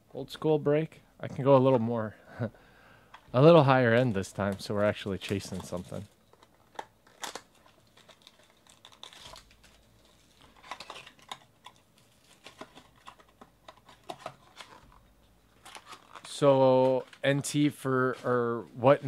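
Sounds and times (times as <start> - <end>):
plastic wrap crinkling and tearing: 4.2 - 17.6.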